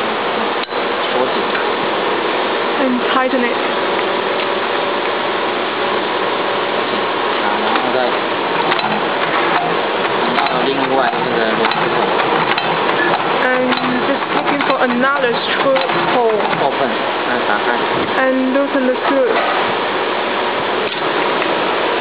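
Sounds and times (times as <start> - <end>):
gear train clicking: 7.4 - 17.0.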